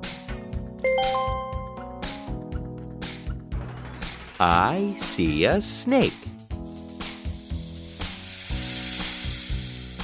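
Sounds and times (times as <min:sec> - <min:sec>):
light background music: 0:00.0 - 0:10.0
snake hissing: 0:06.6 - 0:10.0.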